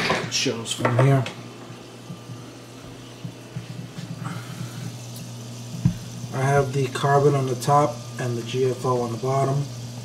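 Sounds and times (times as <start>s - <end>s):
low pump hum: 1.3s - 10.0s.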